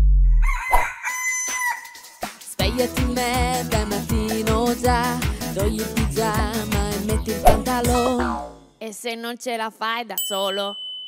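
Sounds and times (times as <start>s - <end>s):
low note: 0.0s - 0.4s
cartoon rooster crow: 0.2s - 2.2s.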